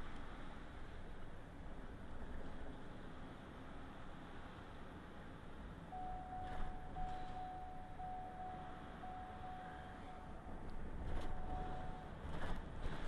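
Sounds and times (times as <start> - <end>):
car road and engine noise: 0.0 - 13.0
electronic beep: 6.0 - 10.6, 11.2 - 12.2.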